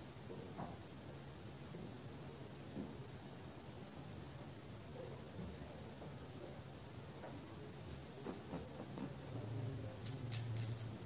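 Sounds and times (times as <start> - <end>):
low steady hum: 0.0 - 11.0
hair crackling under fingers: 10.0 - 11.0.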